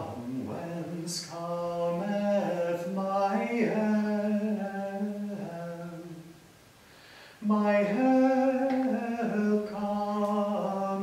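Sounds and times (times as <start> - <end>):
man singing: 0.0 - 6.4, 7.4 - 11.0
breath: 6.8 - 7.4.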